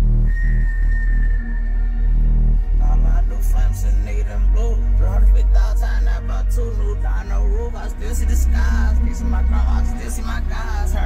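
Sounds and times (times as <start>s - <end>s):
bass-heavy electronic music: 0.0s - 11.0s.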